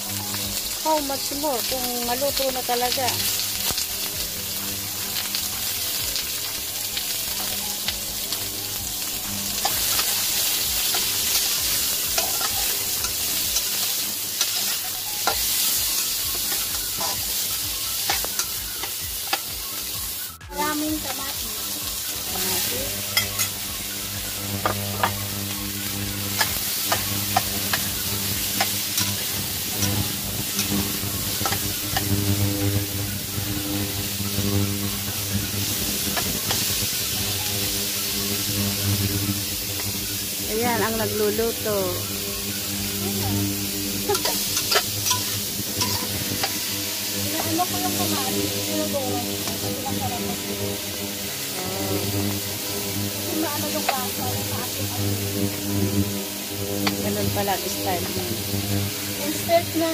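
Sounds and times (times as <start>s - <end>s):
vegetables sizzling in oil: 0.0s - 59.9s
spatula scraping a wok: 7.2s - 41.4s, 42.0s - 59.9s.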